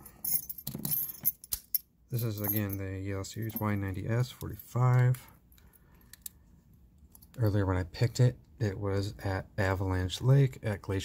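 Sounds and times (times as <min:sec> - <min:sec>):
keys jingling: 0:00.0 - 0:02.8.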